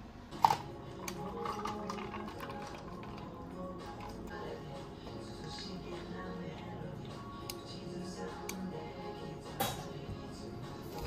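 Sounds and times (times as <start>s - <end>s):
milk pouring over ice: 0.9s - 4.6s.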